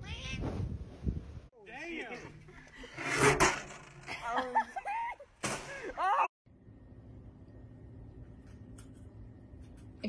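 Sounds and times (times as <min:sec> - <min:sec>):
faint hum: 0:06.5 - 0:10.0.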